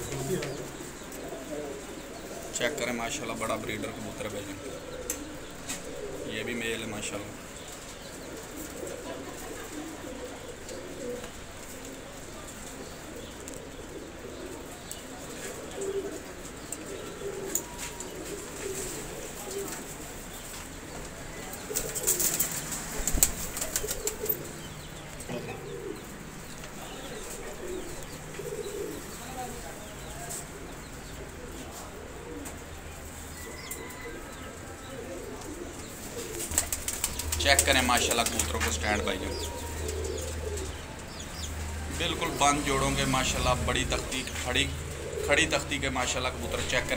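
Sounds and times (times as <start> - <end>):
pigeons cooing softly: 0.0 - 46.9
wings flapping: 21.6 - 24.6, 35.4 - 40.8.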